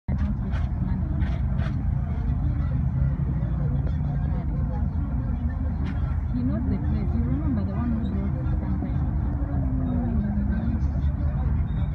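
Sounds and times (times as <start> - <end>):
faint voices: 0.1 - 11.9.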